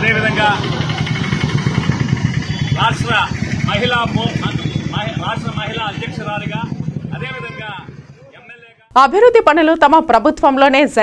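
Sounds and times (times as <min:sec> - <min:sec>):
vehicle engine rumbling: 0:00.0 - 0:08.9
man speaking: 0:02.8 - 0:08.8.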